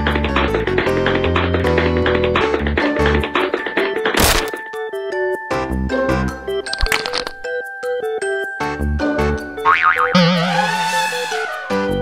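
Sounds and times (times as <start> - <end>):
cartoon background music: 0.0 - 12.0
wobbling boing sound effect: 9.7 - 10.8.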